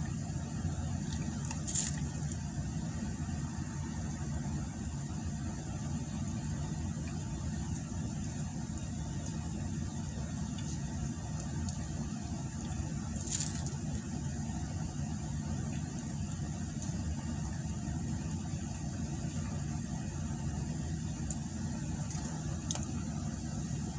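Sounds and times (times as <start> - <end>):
car idling inside cabin: 0.0 - 23.9.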